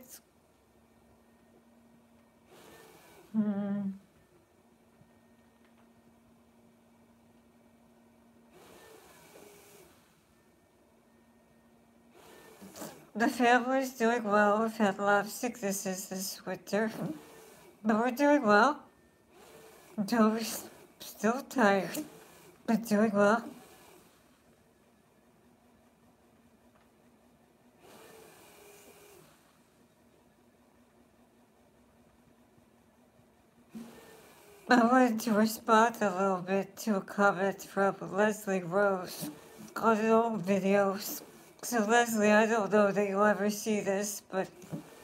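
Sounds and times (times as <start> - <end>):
faint steady hum: 0.0 - 45.0
breathing machine air rush: 2.5 - 3.4, 39.2 - 39.8.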